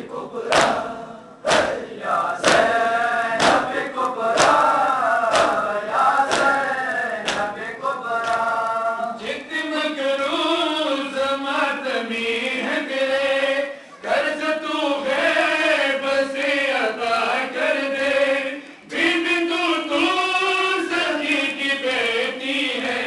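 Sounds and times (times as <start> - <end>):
rhythmic chest-beating slaps: 0.0 - 9.4
crowd of men chanting: 0.0 - 10.7, 11.4 - 23.0.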